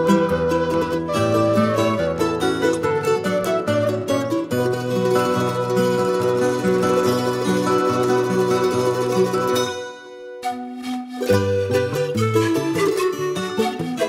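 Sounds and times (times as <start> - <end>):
plucked guitar and bass notes: 0.0 - 10.2, 11.2 - 14.0
charango picking quick melody: 0.0 - 14.0
wooden flute long notes: 0.0 - 14.0.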